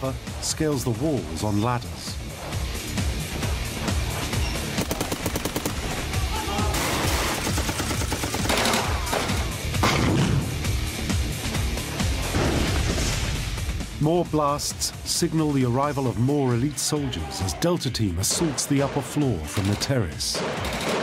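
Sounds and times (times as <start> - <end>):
tense background music: 0.0 - 21.0
automatic rifle fire: 4.8 - 6.0, 6.8 - 10.2, 20.4 - 21.0.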